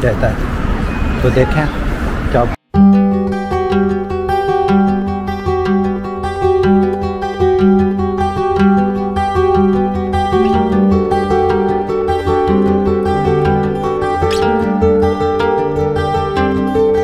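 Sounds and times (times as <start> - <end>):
plucked guitar music: 2.7 - 17.0.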